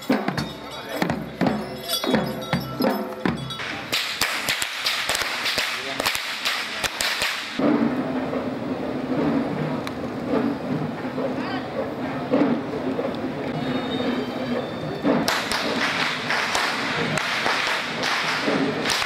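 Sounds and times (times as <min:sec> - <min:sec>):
crowd noise: 0:00.0 - 0:19.0
whip cracks: 0:03.9 - 0:07.7, 0:15.1 - 0:19.0.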